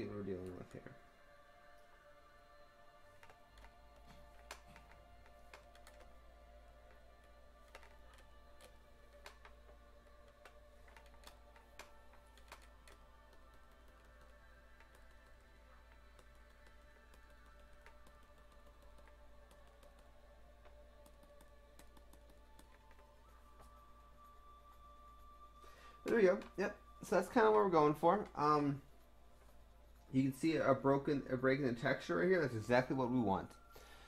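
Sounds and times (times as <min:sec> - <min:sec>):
faint background music: 0:00.0 - 0:34.0.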